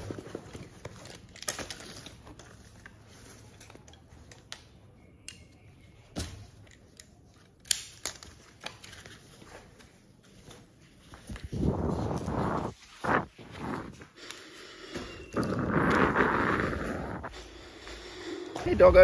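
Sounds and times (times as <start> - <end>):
fabric and strap rubbing: 9.4 - 14.2.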